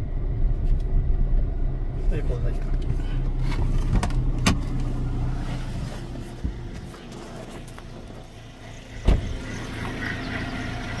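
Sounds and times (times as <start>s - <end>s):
low engine hum: 0.0s - 11.0s
thump on microphone: 9.0s - 9.4s.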